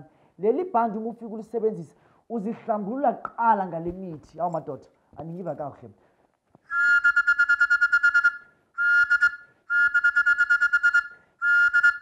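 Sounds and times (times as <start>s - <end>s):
hand-held whistle blasts: 6.6s - 12.0s.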